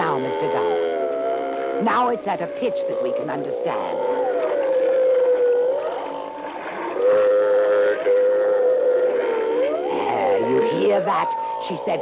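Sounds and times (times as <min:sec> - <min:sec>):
slowed dolphin moan: 0:00.0 - 0:12.0.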